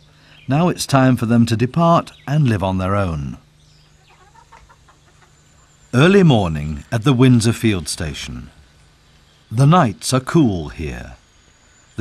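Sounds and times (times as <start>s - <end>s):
chickens clucking: 3.8s - 5.7s.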